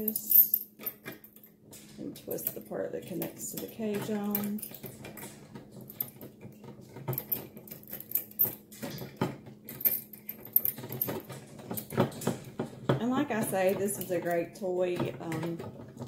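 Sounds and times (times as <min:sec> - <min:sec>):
metal chain clicks and rattles: 0:00.0 - 0:16.0.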